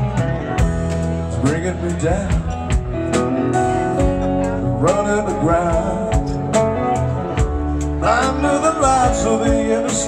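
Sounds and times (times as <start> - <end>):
live rock band playing: 0.0 - 10.0
male lead vocal: 1.2 - 10.0.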